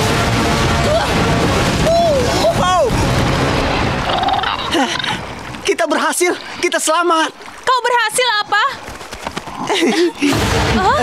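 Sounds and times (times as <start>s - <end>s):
background music: 0.0s - 5.7s
heavy splashing through river: 0.2s - 11.0s.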